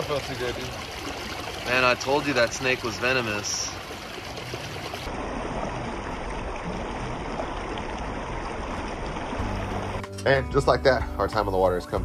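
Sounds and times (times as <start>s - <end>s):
river water flowing: 0.0s - 10.2s.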